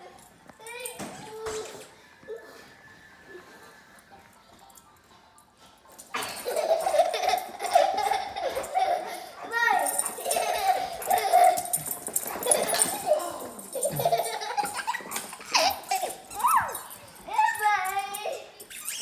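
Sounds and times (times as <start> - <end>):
toddler laughing and squealing: 6.4 - 19.0.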